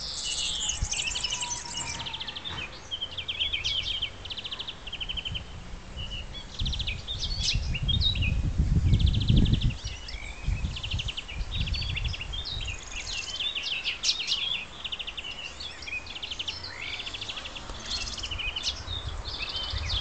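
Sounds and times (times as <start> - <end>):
nightingale singing: 0.0 - 20.0
low rumble on microphone: 5.0 - 13.1.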